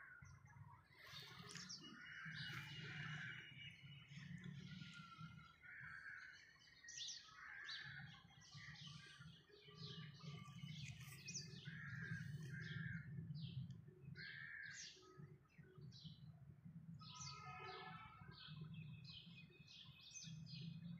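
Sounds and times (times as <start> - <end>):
small birds chirping: 0.0 - 16.3.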